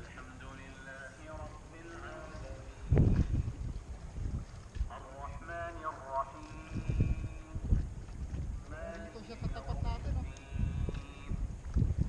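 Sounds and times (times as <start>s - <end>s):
faint voices: 0.0s - 3.2s
wind buffeting microphone: 0.0s - 12.0s.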